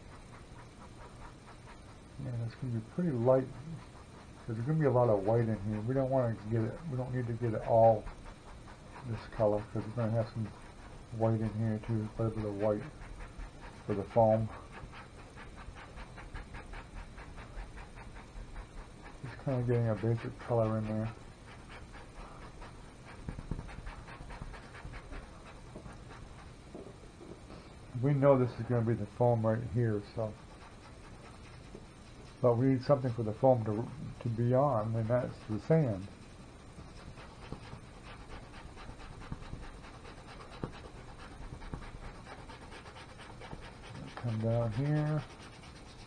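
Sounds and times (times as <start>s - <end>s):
paintbrush scrubbing on canvas: 0.0s - 26.8s, 27.6s - 46.0s.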